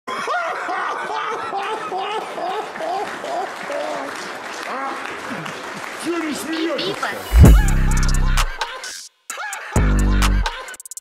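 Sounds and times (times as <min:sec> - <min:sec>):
audience applause: 0:01.3 - 0:07.3
man's voice: 0:06.0 - 0:08.8.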